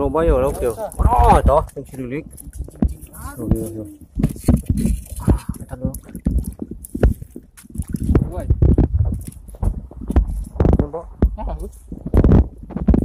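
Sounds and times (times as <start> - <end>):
shallow water splashing: 0.0 - 12.7.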